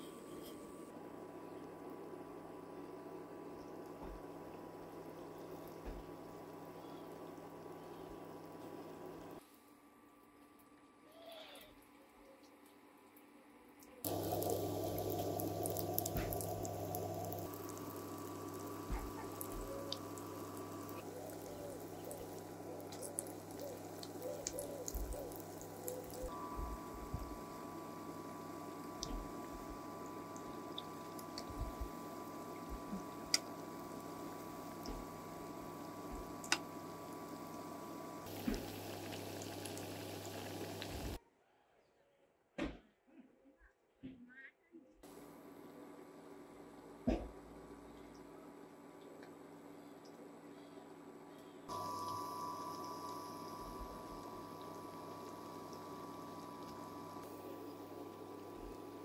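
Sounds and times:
low electrical hum: 0:00.0 - 0:11.0, 0:11.7 - 0:41.2, 0:45.0 - 0:59.0
food deep-frying in oil: 0:14.0 - 0:41.2, 0:51.7 - 0:59.0
oil pops and crackles: 0:14.1 - 0:26.3, 0:36.1 - 0:36.7
thin high tone: 0:51.7 - 0:58.4.

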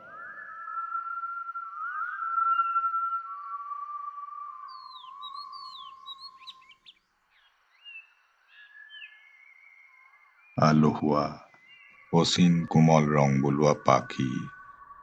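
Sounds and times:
high whistling tone: 0:00.0 - 0:05.7
bird-like chirps: 0:00.0 - 0:15.0.

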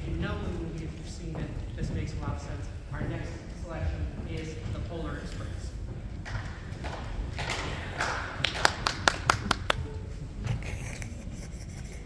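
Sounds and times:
low murmuring: 0:07.2 - 0:12.0.

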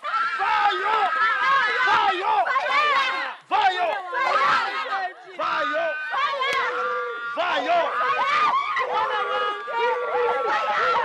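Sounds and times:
loud shouting voice: 0:00.0 - 0:11.0.

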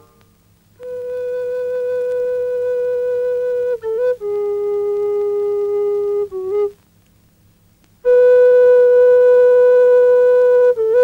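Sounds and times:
wind instrument long note: 0:00.8 - 0:06.8, 0:08.0 - 0:11.0.

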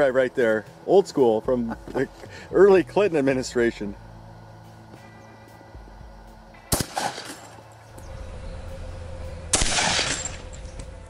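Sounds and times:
music: 0:00.0 - 0:11.0
shotgun shot with echo: 0:06.7 - 0:07.5, 0:09.5 - 0:10.4.

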